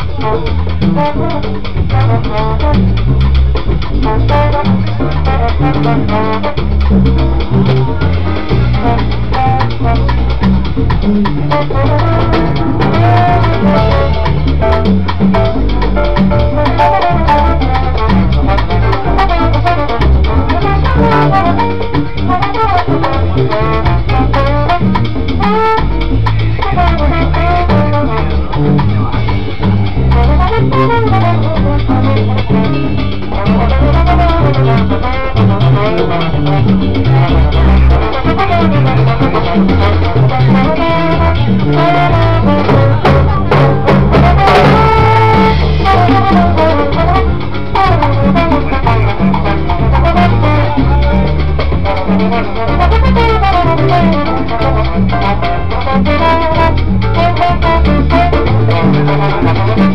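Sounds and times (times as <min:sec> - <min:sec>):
salsa band playing: 0:00.0 - 0:59.9
trombone melody: 0:00.0 - 0:59.9.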